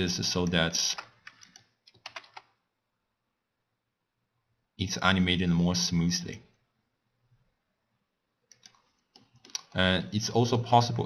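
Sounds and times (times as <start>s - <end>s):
faint computer mouse clicks: 8.5s - 9.7s.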